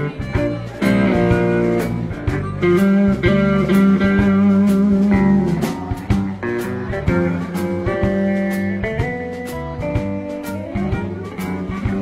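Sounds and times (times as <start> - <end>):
blues band playing: 0.0 - 12.0
blues harmonica: 0.0 - 12.0.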